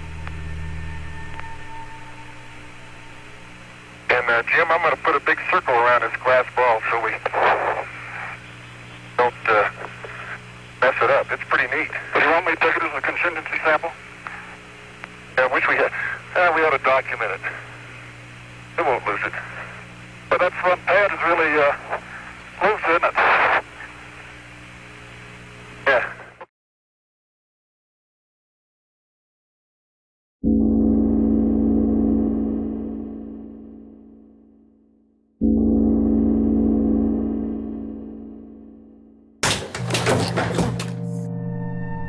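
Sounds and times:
low hum: 0.0 - 25.8, 30.4 - 42.0
radio hiss: 3.1 - 26.5
spoken word over radio: 4.1 - 8.4, 9.2 - 14.0, 15.4 - 17.7, 18.8 - 23.8, 25.8 - 26.5.

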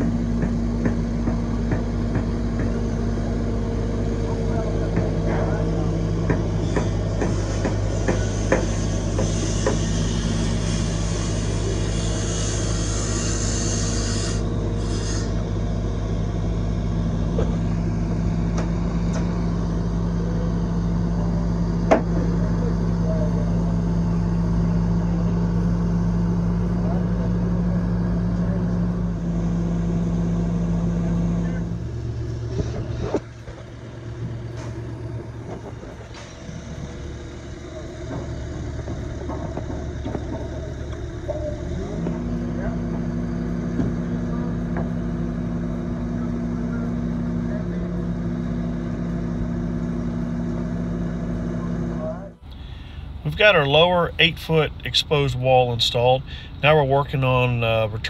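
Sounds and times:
construction equipment engine: 0.0 - 58.0
quieter engine note: 15.4 - 58.0.

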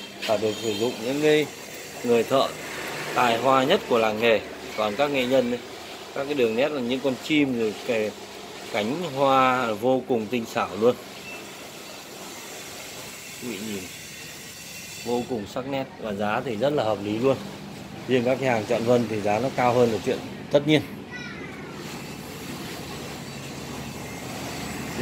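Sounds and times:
motor rumble and hiss: 0.0 - 25.0
steady background noise: 0.0 - 25.0.

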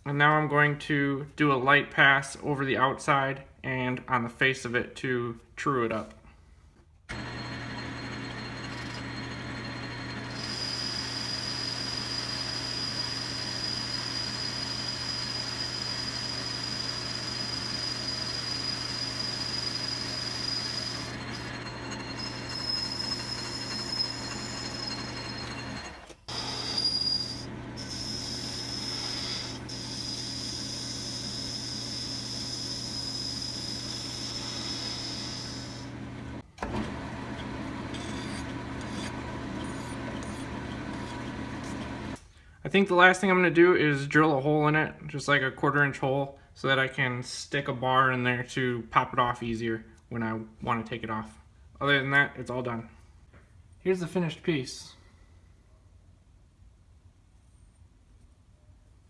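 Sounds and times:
cutting tool on spinning metal: 7.1 - 42.2
lathe motor hum with whine: 7.1 - 42.2
hand file rubbing spinning metal: 7.3 - 35.8, 37.9 - 42.1.

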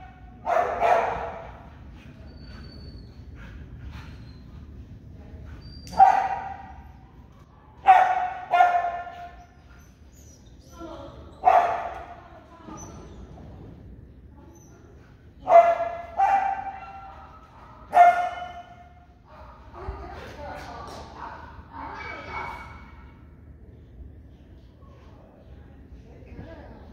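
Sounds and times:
dog barking in a hall: 0.0 - 4.8, 5.4 - 13.1, 14.6 - 23.4.

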